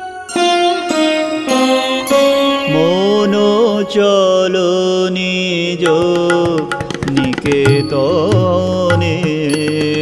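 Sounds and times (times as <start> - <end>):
instrumental accompaniment: 0.0 - 10.0
man singing a long note: 0.9 - 10.0.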